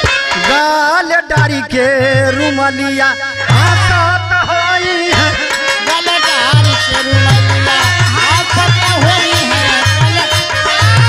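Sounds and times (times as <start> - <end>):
sustained harmonium tones: 0.0 - 11.0
sliding folk melody: 1.8 - 11.0.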